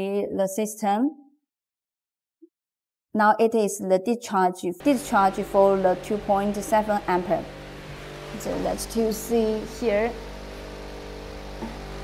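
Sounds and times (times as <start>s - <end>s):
electric fan whirring: 4.8s - 12.0s.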